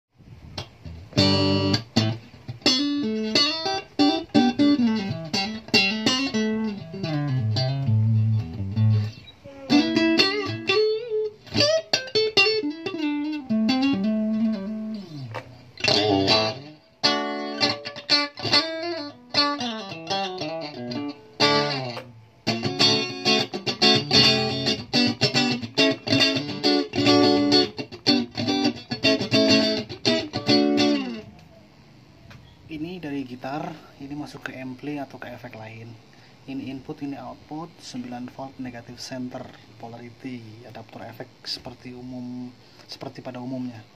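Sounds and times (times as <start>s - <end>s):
electric guitar playing: 0.5s - 31.7s.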